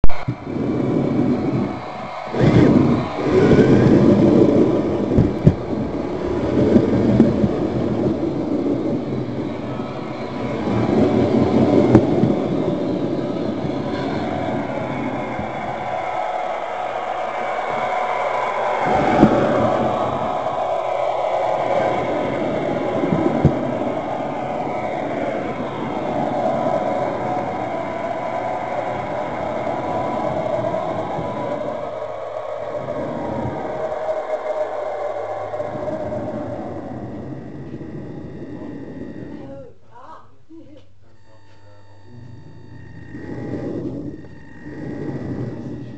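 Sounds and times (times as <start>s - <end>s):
model train motor hum: 0.4s - 39.7s, 41.2s - 45.9s.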